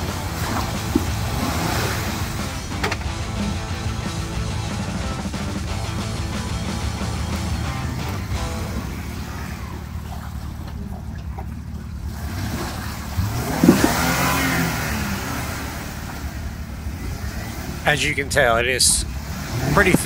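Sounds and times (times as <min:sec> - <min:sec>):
car engine revving under load: 0:00.0 - 0:20.0
tyres churning mud: 0:00.0 - 0:20.0.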